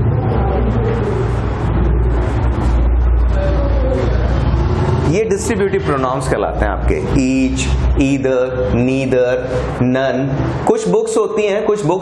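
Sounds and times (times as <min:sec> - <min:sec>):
loud low rumble: 0:00.0 - 0:10.6.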